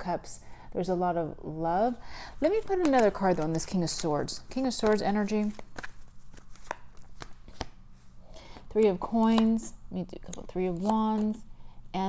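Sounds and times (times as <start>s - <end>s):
cards clicking and tapping: 4.5s - 7.8s, 9.2s - 9.6s, 10.3s - 11.4s.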